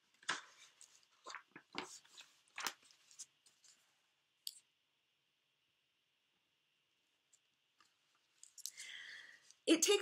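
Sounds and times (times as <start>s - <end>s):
book pages turning: 0.0s - 3.9s.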